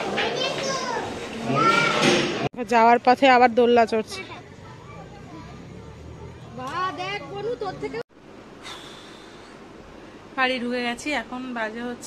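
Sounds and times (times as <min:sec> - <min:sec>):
children calling out: 0:00.0 - 0:02.2
crowd chatter: 0:04.2 - 0:08.0.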